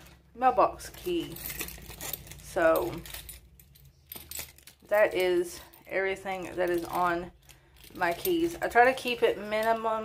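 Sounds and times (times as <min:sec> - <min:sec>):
keys jingling: 0:00.9 - 0:10.0.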